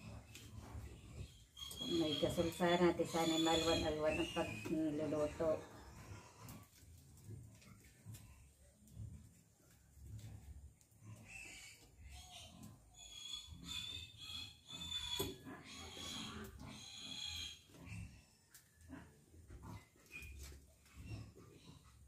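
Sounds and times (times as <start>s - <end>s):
animal high-pitched cries: 1.4s - 6.3s.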